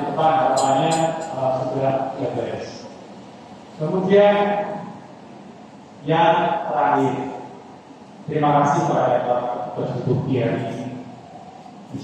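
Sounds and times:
man speaking over loudspeakers: 0.0s - 3.0s, 3.8s - 5.0s, 6.0s - 7.6s, 8.2s - 11.2s.

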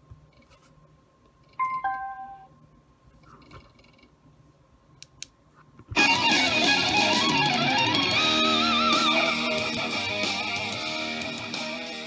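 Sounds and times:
two-note falling chime: 1.6s - 2.5s.

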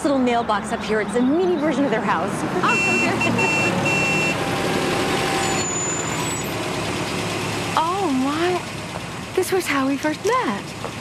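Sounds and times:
jeep engine running: 0.0s - 11.0s
short high beeps: 2.6s - 4.4s, 5.4s - 6.5s.

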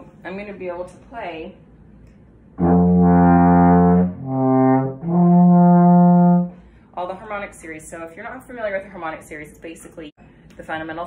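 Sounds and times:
alphorn long notes: 2.6s - 6.6s.

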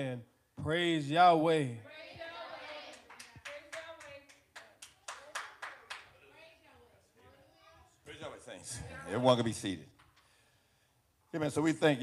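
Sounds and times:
congregation clapping hands: 2.7s - 6.2s.

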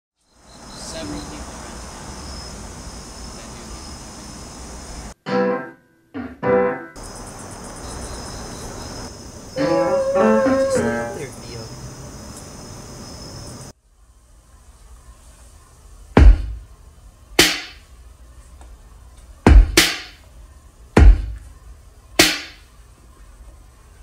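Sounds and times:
background hiss: 0.2s - 5.2s, 7.0s - 24.0s.

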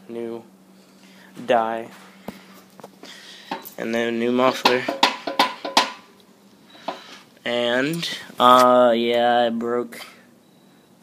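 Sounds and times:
sharp handling taps: 4.6s - 6.0s.

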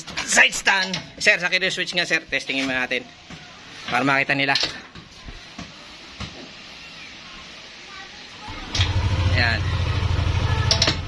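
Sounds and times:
scooter engine starting and idling: 8.5s - 11.0s.

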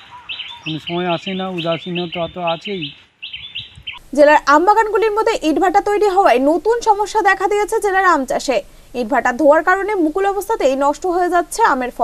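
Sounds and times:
small birds chirping: 0.0s - 5.2s
man talking: 0.7s - 3.0s
person speaking: 0.7s - 3.0s.

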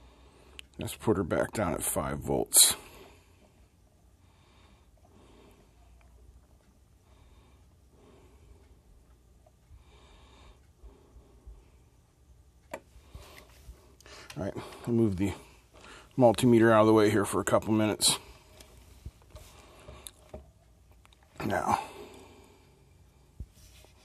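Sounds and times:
person breathing softly: 0.0s - 0.7s, 2.7s - 6.2s, 7.0s - 16.2s, 18.1s - 20.4s, 21.7s - 24.0s.

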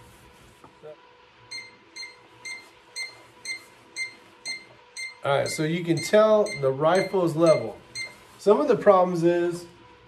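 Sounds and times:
short high beeps: 1.5s - 8.2s.

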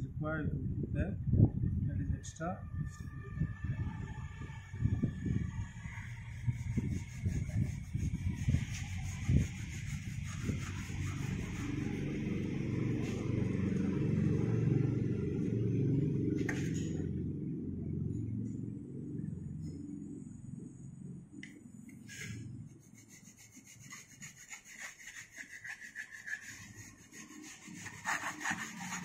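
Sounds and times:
steady low rumble: 0.0s - 22.8s.

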